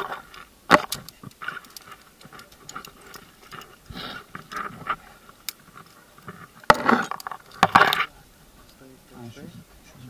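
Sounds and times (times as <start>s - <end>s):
climbing gear clicking: 0.0s - 8.0s.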